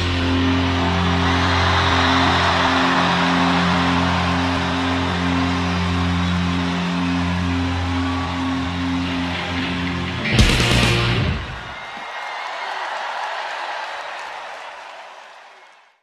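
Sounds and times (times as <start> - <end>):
distorted guitar and bass chord: 6.8 - 11.6.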